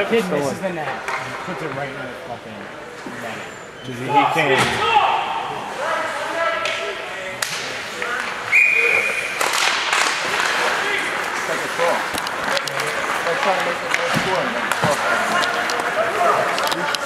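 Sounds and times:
knocks of hockey sticks: 0.8s - 1.8s, 7.4s - 8.4s, 9.3s - 10.8s, 11.6s - 17.0s.

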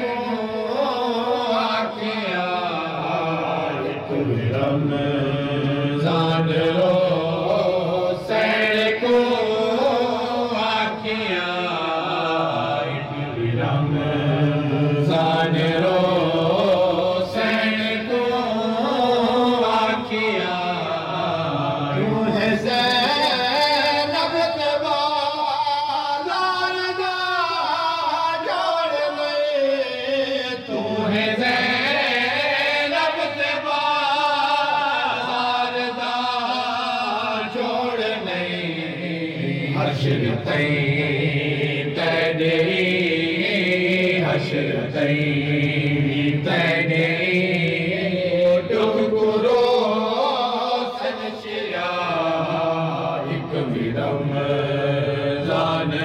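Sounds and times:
man chanting a lament: 0.0s - 56.0s.

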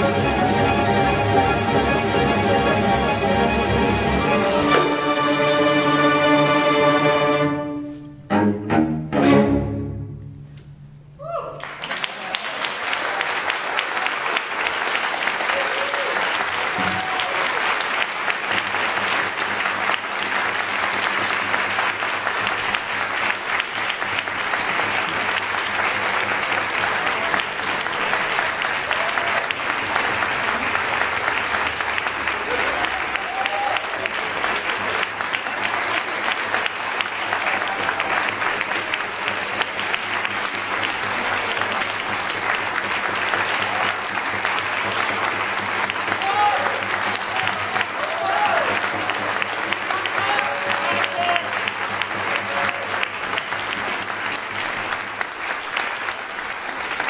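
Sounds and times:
audience applauding: 0.0s - 7.0s, 11.6s - 57.0s.

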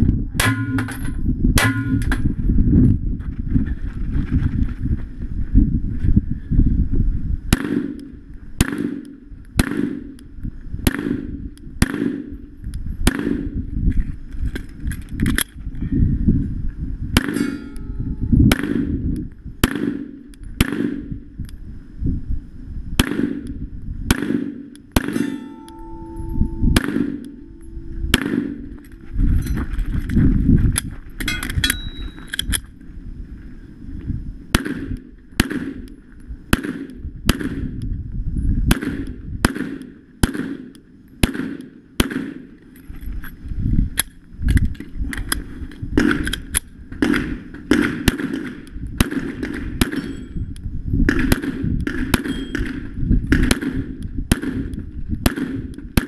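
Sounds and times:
heavy low rumble: 0.0s - 39.6s
steel targets clanging: 0.4s - 2.2s, 17.3s - 18.1s, 25.1s - 29.7s, 31.3s - 32.4s
pistol shots: 7.5s - 10.2s, 10.8s - 12.3s, 18.5s - 18.9s, 19.6s - 21.1s, 23.0s - 23.4s, 24.1s - 26.2s, 26.8s - 27.4s, 28.1s - 28.8s, 34.5s - 35.9s, 36.5s - 37.7s, 38.7s - 42.6s, 47.0s - 50.3s, 51.1s - 56.0s.

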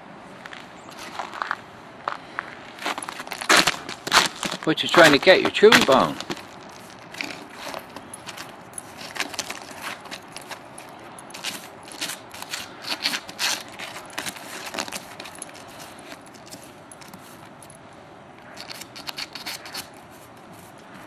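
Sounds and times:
snow crust crunching: 0.4s - 10.7s
dog claws scraping icy snow: 2.8s - 17.5s, 18.5s - 21.0s.

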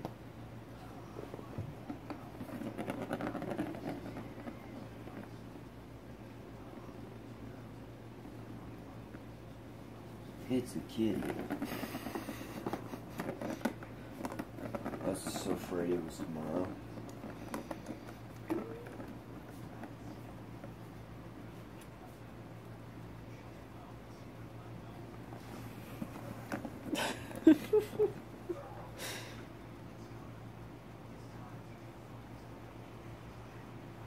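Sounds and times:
plastic ball rattling around track: 1.9s - 4.6s.

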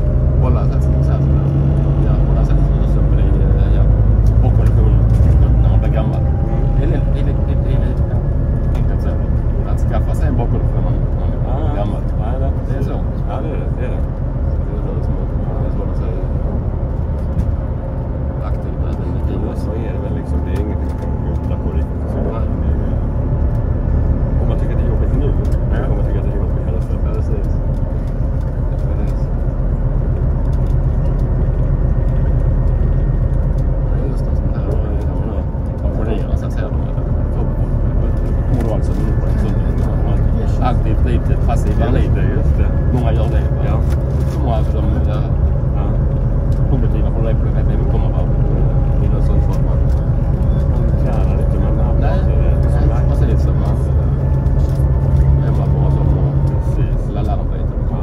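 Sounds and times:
bus engine and road rumble: 0.0s - 58.0s
indistinct passenger voices: 0.0s - 58.0s.

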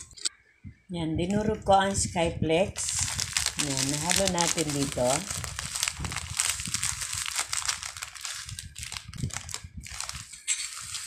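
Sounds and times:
plastic wrapper crinkling: 2.8s - 11.0s.

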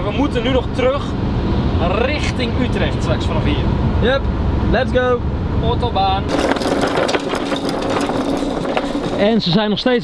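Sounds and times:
pallet jack rolling on concrete: 6.3s - 9.6s.

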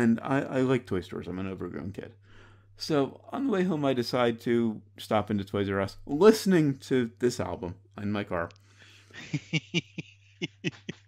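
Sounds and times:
man laughing: 9.1s - 11.0s.

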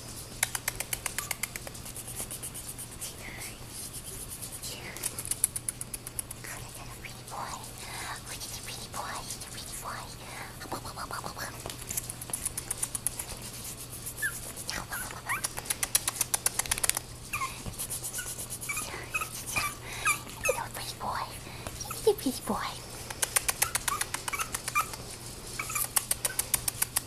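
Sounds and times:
puppy yipping and whining: 17.3s - 17.6s, 18.7s - 20.6s, 21.8s - 22.1s, 23.6s - 25.0s, 25.6s - 26.4s.

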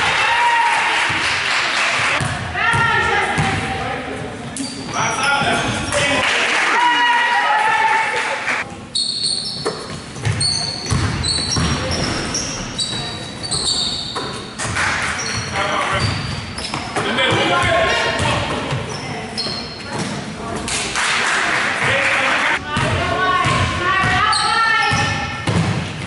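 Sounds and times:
people shouting: 0.0s - 1.1s, 6.7s - 8.2s
basketball bouncing: 2.2s - 3.7s, 9.6s - 13.1s, 22.6s - 24.3s, 24.9s - 26.0s
sneakers squeaking: 2.2s - 6.2s, 8.6s - 20.7s, 22.7s - 26.0s.

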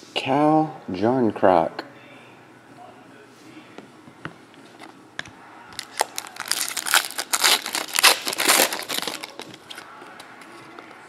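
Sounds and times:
foil wrapper crinkling and tearing: 5.8s - 9.8s.

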